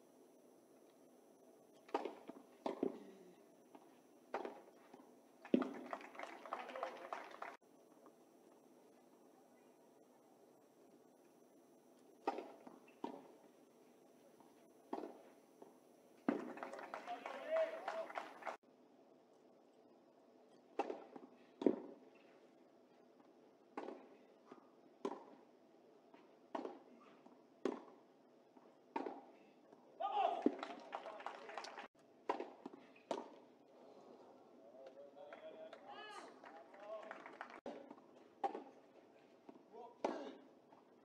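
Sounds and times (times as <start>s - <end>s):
tennis ball struck by racquets: 1.9s - 3.0s, 4.3s - 4.8s, 12.2s - 13.3s, 14.9s - 15.3s, 20.7s - 22.2s, 23.7s - 24.2s, 25.0s - 25.5s, 26.5s - 28.0s, 28.9s - 29.4s, 32.2s - 33.4s, 37.6s - 38.8s
voices: 5.8s - 7.6s, 16.5s - 18.6s, 30.0s - 31.9s.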